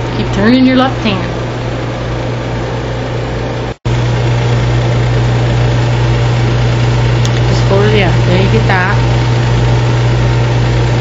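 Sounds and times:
person speaking: 0.0s - 1.4s, 7.3s - 9.2s
constant low hum: 0.0s - 11.0s.

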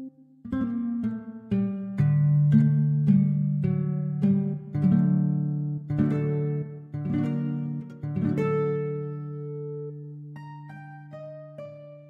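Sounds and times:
plucked harp guitar notes: 0.0s - 12.0s.

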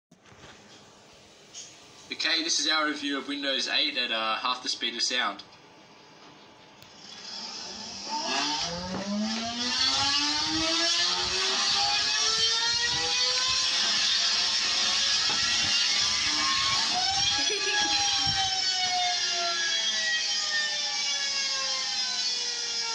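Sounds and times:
small motor whirring whine: 6.8s - 22.9s.

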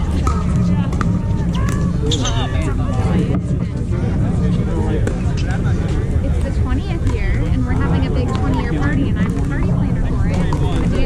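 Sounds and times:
players chattering: 0.0s - 11.0s
wind buffeting microphone: 0.0s - 11.0s.

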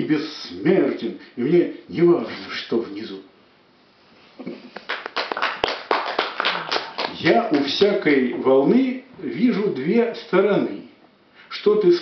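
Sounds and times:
audience clapping: 4.8s - 7.9s.

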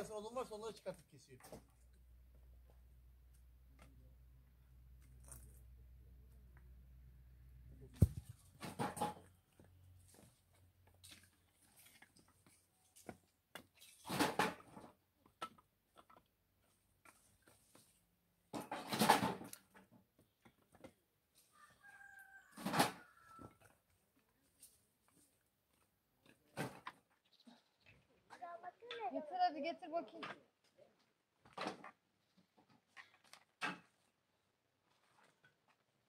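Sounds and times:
firewood knocking and scraping: 7.9s - 11.3s
chicken calling faintly: 21.4s - 23.7s.

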